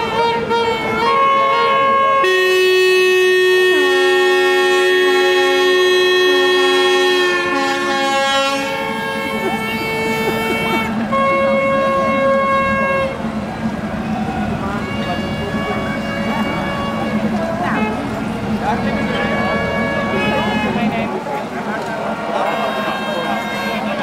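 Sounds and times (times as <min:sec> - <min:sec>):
reed instrument playing chords: 0:00.0 - 0:21.3.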